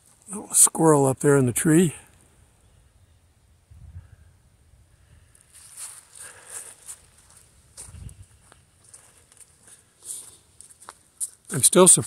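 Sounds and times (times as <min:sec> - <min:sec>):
footsteps crunching on dry grass: 0:05.4 - 0:12.0.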